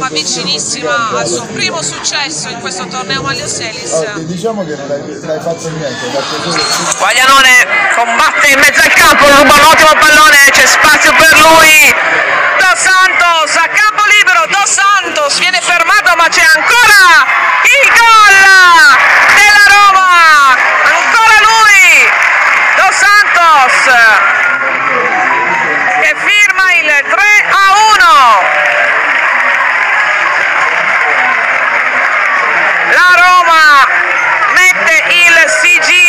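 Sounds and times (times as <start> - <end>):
voices shouting and cheering: 5.5 - 36.0
crowd cheering and applause: 5.7 - 36.0.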